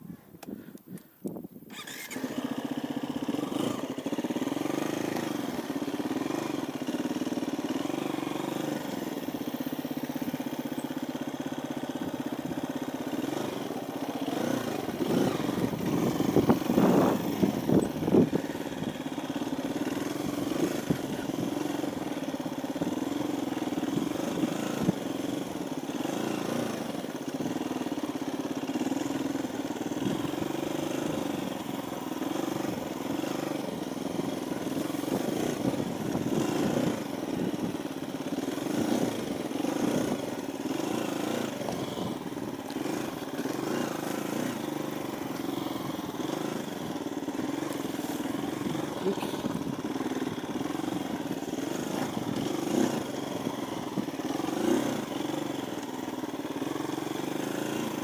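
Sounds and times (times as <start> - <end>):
dirt bike engine running: 0.0 - 58.0.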